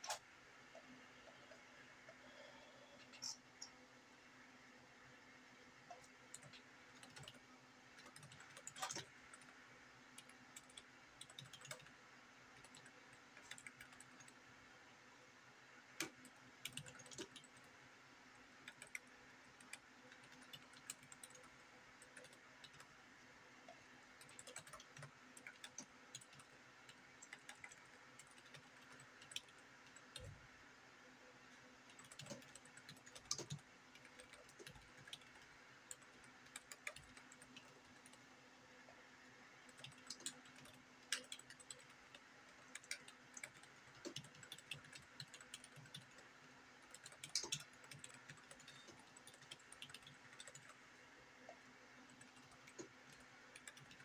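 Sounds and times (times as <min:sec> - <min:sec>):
computer keyboard typing: 0:00.0 - 0:01.6, 0:02.3 - 0:03.8, 0:05.9 - 0:14.5, 0:16.0 - 0:17.8, 0:18.6 - 0:23.0, 0:23.6 - 0:30.4, 0:31.5 - 0:38.3, 0:39.6 - 0:51.0, 0:52.0 - 0:54.0.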